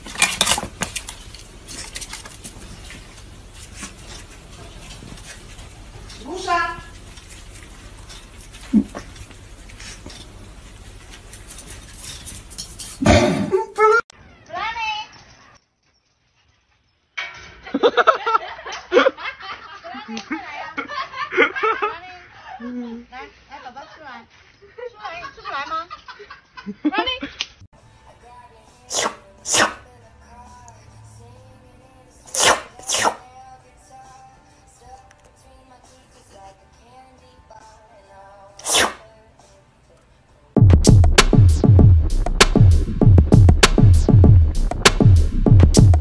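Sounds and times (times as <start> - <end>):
cat sneezing: 8.6 - 9.1, 13.0 - 13.5, 28.9 - 29.8, 32.3 - 33.2, 38.6 - 39.0
soft background music: 27.8 - 46.0.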